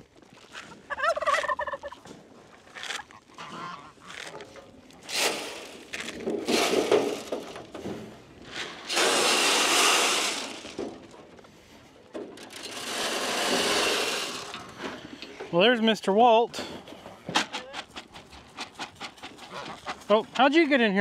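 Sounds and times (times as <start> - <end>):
turkeys gobbling: 0.9 - 2.1, 2.9 - 4.3, 19.0 - 20.5.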